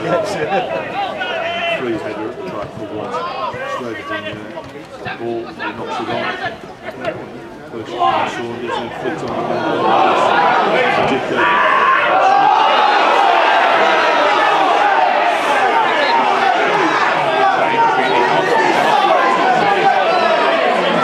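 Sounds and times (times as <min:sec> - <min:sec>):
crowd talking and shouting: 0:00.0 - 0:21.0.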